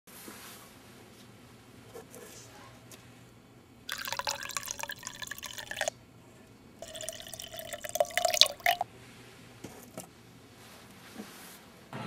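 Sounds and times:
liquid pouring into a cup: 3.9 - 5.9, 6.8 - 8.8.

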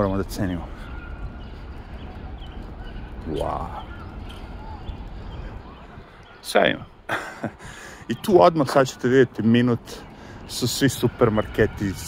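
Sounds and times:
small birds chirping: 0.0 - 12.0
steady low city rumble: 0.0 - 12.0.

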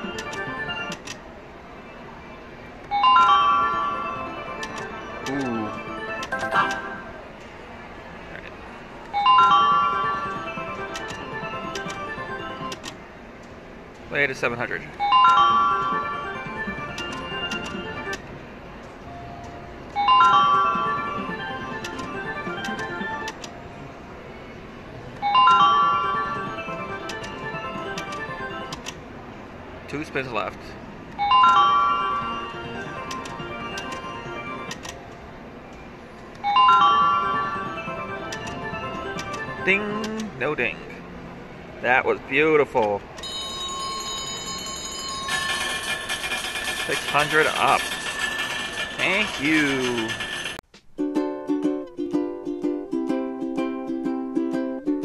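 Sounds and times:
slot machine reel clicks: 0.0 - 1.2, 3.0 - 7.1, 9.4 - 12.9, 15.1 - 18.2, 20.0 - 23.5, 25.5 - 28.9, 31.3 - 35.0, 36.6 - 40.3, 44.3 - 50.6
low background din: 0.0 - 30.0, 42.8 - 50.8
ticket printer whirring: 16.4 - 18.3, 44.7 - 50.6.

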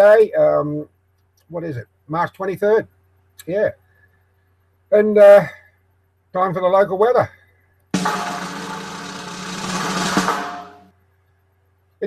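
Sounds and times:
musical sting with drum roll: 8.0 - 10.9.

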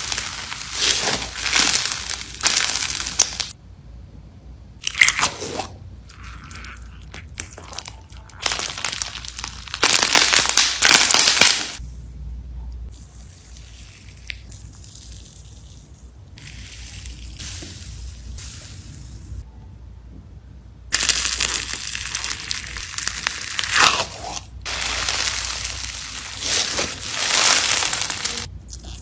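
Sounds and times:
gritty slime crunching: 0.0 - 3.6, 4.8 - 11.8, 20.9 - 29.0.

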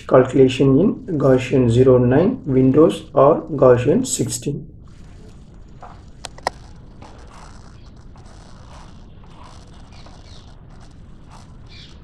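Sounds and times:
microphone hiss: 0.0 - 12.0
faint soft indistinct sounds: 4.8 - 12.0.

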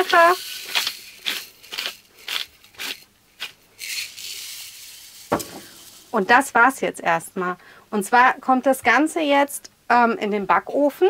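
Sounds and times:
pepper grinder crackling: 0.0 - 6.4
sharp knock: 5.3 - 5.8.

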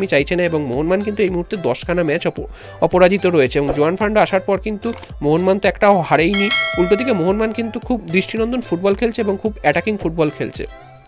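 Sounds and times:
background music: 6.2 - 8.1
bell-like chime: 6.4 - 7.9.

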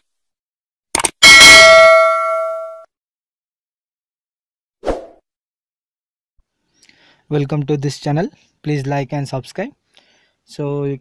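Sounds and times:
notification bell ding: 1.2 - 2.9.

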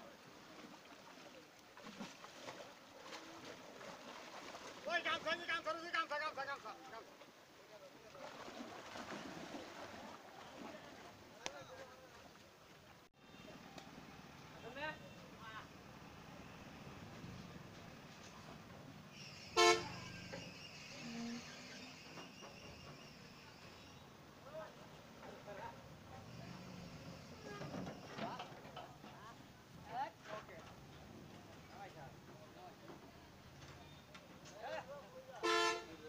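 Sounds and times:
outdoor background noise: 0.0 - 36.0
vehicle horn toot: 19.3 - 20.4, 27.2 - 27.8, 35.4 - 36.0.

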